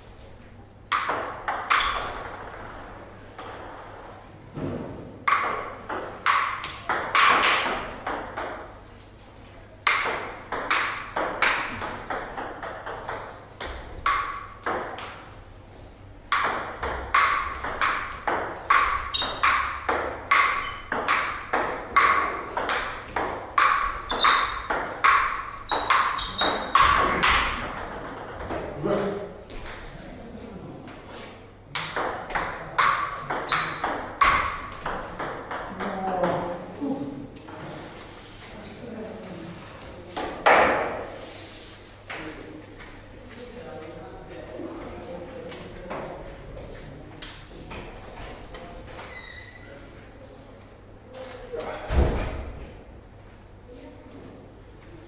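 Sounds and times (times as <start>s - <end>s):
table tennis ball clicking: 16.3s - 29.8s, 31.8s - 36.4s.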